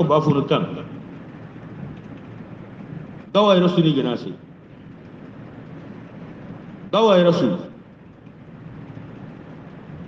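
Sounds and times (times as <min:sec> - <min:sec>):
low background rumble and hiss: 0:00.0 - 0:10.0.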